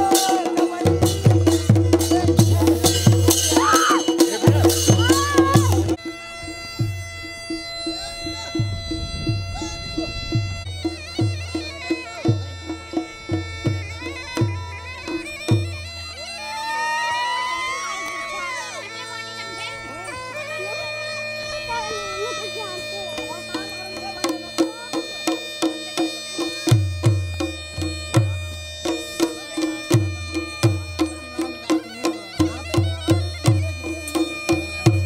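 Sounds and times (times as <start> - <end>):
steady drum strokes: 0.0 - 15.8
bagpipe drone and melody: 0.0 - 35.0.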